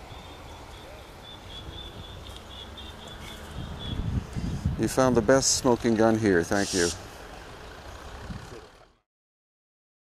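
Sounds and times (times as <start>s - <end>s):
road traffic hum: 0.0s - 9.1s.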